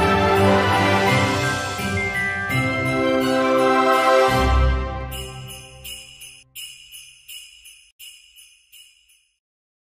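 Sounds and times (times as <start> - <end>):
jingle bells shaken: 0.0 - 9.4
music: 0.0 - 9.4.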